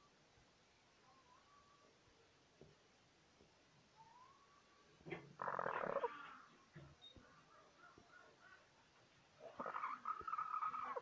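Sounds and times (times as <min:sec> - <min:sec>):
hen calling: 0:04.0 - 0:06.6, 0:09.4 - 0:11.0.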